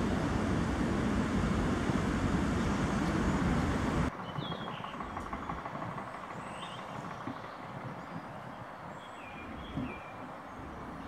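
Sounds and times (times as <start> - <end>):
loud outdoor rumble: 0.0 - 7.9.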